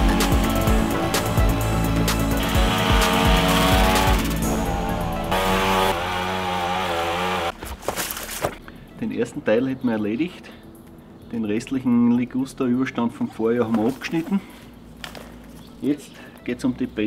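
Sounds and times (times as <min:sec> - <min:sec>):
background music with a beat: 0:00.0 - 0:05.9
hedge trimmer cutting branches: 0:00.0 - 0:08.1.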